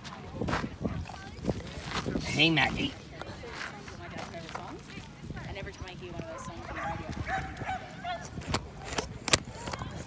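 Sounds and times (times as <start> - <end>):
people's voices: 0.0 - 10.0
dog barking: 6.4 - 8.4.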